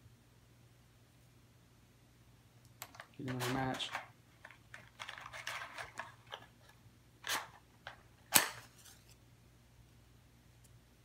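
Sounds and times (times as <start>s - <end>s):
matchbox rustling: 2.8s - 9.2s.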